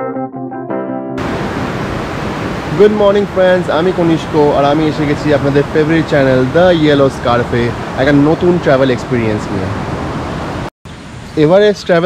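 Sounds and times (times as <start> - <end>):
organ music: 0.0 - 1.2
mountain stream rushing: 1.2 - 11.6
man speaking: 2.7 - 9.8, 11.4 - 12.0.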